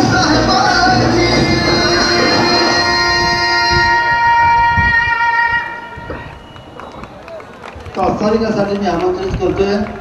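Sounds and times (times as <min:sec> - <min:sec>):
scattered voices: 0:00.0 - 0:04.9
murmur of outdoor crowd: 0:00.0 - 0:10.0.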